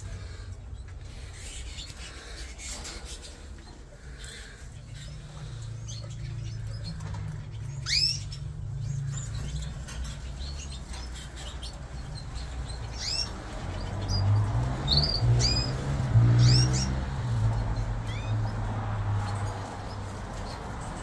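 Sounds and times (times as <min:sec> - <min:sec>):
canaries chirping: 0:00.0 - 0:21.0.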